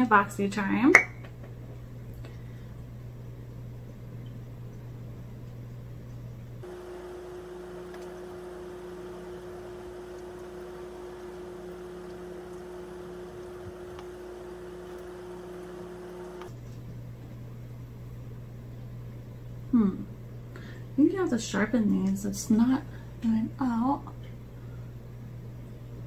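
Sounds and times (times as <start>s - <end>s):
background hum and hiss: 0.0s - 26.0s.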